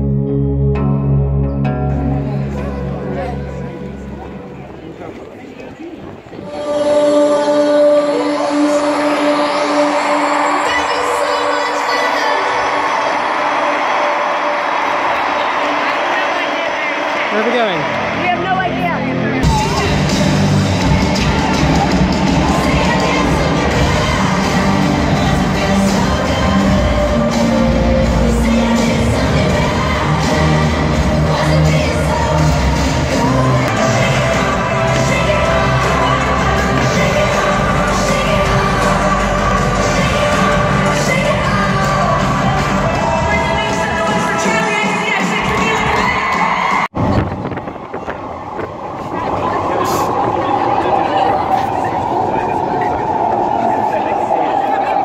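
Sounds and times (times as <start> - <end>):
live pop music over loudspeakers: 6.3 - 47.6
crowd cheering: 8.5 - 55.0.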